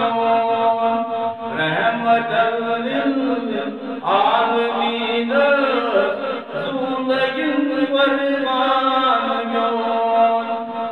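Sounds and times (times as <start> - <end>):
man chanting: 0.0 - 10.9.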